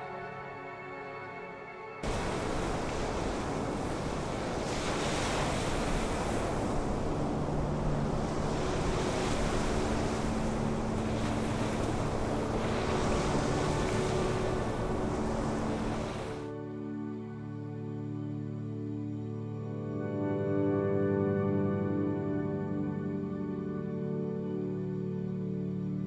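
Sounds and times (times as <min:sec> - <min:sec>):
faint sustained music tones: 0:00.0 - 0:26.0
ocean waves breaking: 0:02.0 - 0:16.5.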